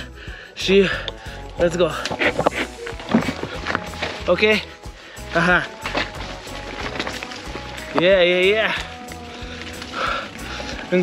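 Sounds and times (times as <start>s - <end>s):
soft background music: 0.0s - 11.0s
bicycle rolling: 1.2s - 11.0s.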